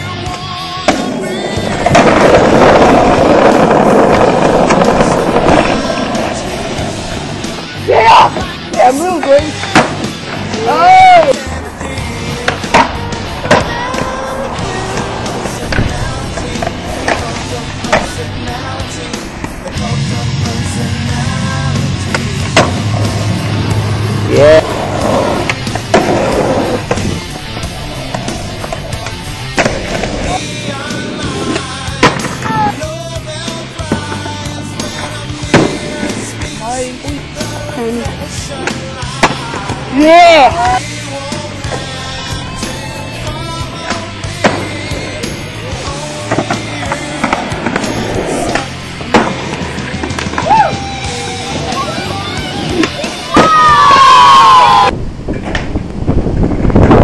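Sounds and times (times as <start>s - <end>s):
rock song: 0.0s - 54.9s
skateboard rolling: 0.0s - 57.0s
skateboard clacks: 0.2s - 7.6s, 8.2s - 10.6s, 11.2s - 20.0s, 22.0s - 23.3s, 24.7s - 32.8s, 42.6s - 53.5s
person shouting: 7.9s - 8.4s, 10.6s - 11.4s, 50.4s - 52.4s.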